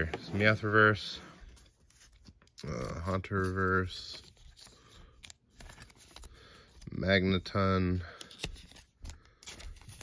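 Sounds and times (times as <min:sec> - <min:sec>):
trading cards rustling: 0:01.4 - 0:10.0.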